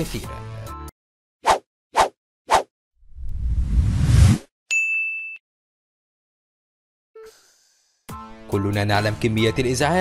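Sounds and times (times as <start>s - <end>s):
quick swishes: 1.5s - 2.7s
whoosh: 3.2s - 4.4s
high ding: 4.7s - 5.4s.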